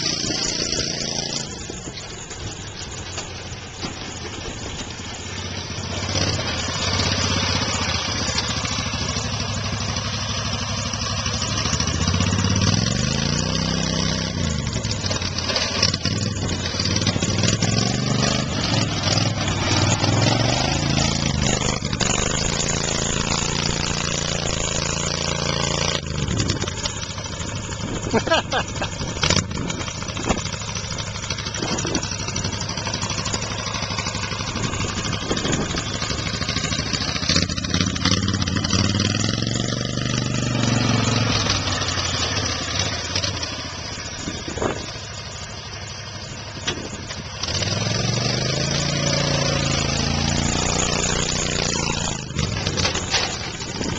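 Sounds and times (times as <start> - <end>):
small petrol engine running: 0.0 - 53.9.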